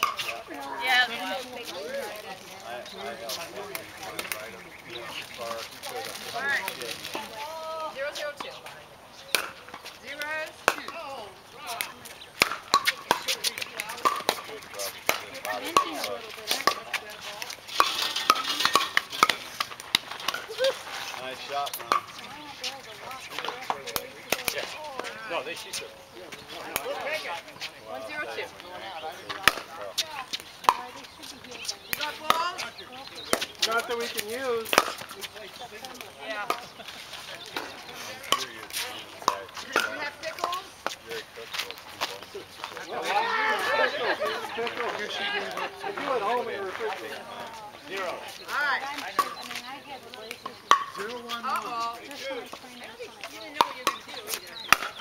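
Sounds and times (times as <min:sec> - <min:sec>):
voices talking: 0:00.0 - 0:55.0
paddles hitting plastic ball: 0:09.3 - 0:11.1, 0:11.7 - 0:20.6, 0:23.3 - 0:25.1, 0:31.9 - 0:36.8.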